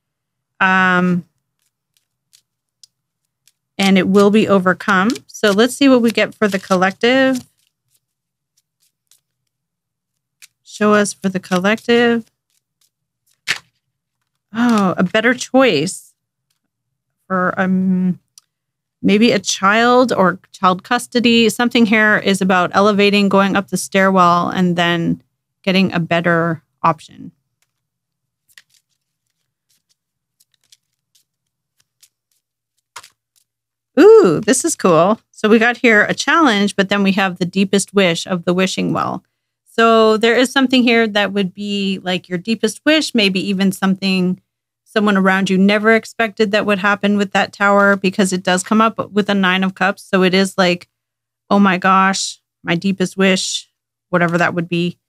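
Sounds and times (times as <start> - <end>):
cards being shuffled: 1.2 - 15.3, 27.5 - 33.6.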